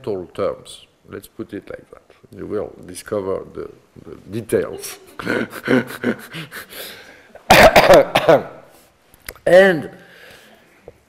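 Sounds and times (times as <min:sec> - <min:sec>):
man coughing loudly: 0:07.5 - 0:08.7.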